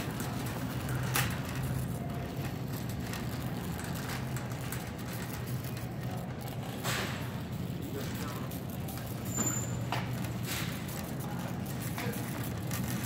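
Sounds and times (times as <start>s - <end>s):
shopping cart rattles: 0.0s - 13.0s
shopping cart wheels rumbling: 0.0s - 13.0s.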